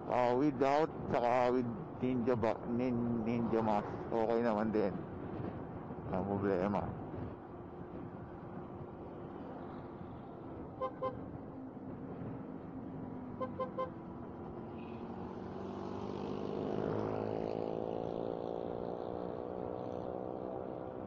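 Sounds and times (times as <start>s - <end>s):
road and traffic noise: 0.0s - 21.0s.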